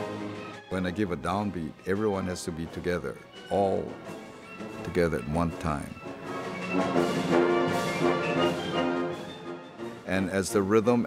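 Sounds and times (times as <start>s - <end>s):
orchestra playing held chords: 0.0s - 11.0s.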